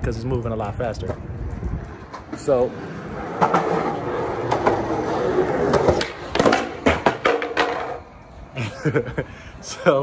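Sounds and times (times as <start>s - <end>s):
skateboard wheels on concrete: 0.1s - 8.6s
skateboard clacks: 1.8s - 8.1s.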